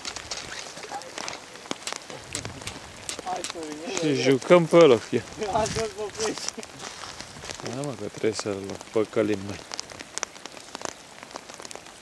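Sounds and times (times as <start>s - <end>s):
sharp taps and clicks: 1.1s - 4.9s.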